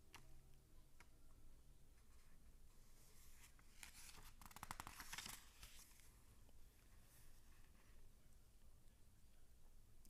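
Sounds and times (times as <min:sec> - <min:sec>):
paper pages rustling: 0:03.1 - 0:06.1.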